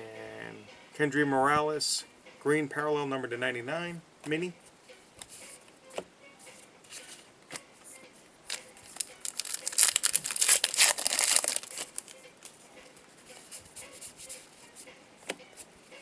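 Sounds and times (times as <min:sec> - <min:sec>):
wrapper tearing and crinkling: 0:08.5 - 0:12.2.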